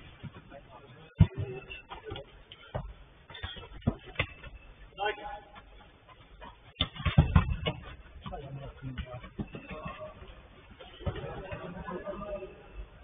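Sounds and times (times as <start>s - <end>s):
football being kicked: 1.1s - 4.6s, 6.8s - 10.1s.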